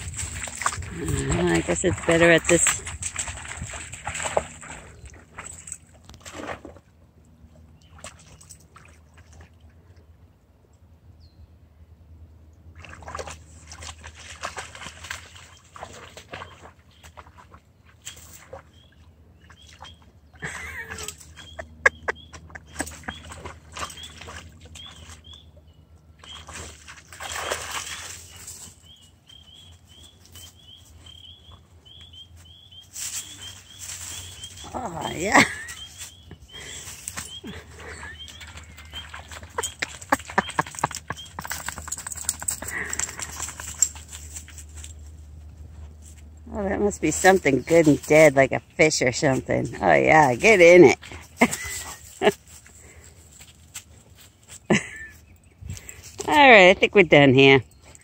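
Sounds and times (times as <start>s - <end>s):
dogs splashing through water: 0.0s - 9.9s, 12.7s - 32.1s, 32.8s - 55.2s.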